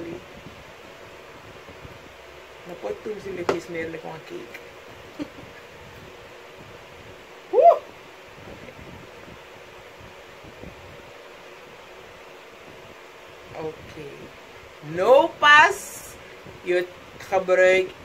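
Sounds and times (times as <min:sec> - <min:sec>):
low room hiss: 0:00.0 - 0:18.0
person's vocal hoo: 0:07.5 - 0:08.0.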